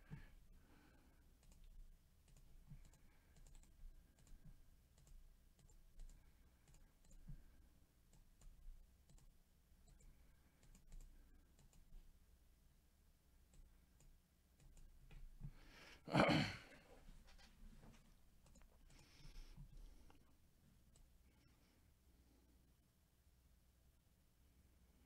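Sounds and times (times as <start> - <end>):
computer mouse clicks: 1.4 - 7.4, 8.1 - 11.9, 13.5 - 15.2, 18.4 - 20.2.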